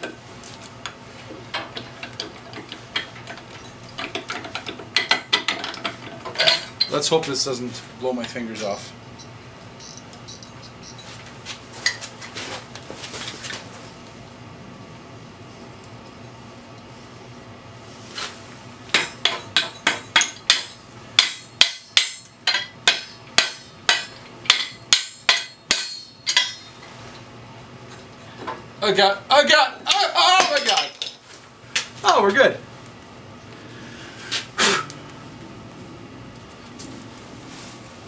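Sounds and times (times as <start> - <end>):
hammer striking steel cylinder: 19.0 - 26.6.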